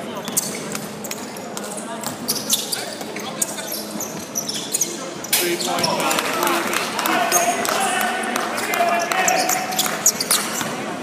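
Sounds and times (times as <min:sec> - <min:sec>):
sneakers squeaking on floor: 0:00.0 - 0:06.1, 0:09.0 - 0:11.0.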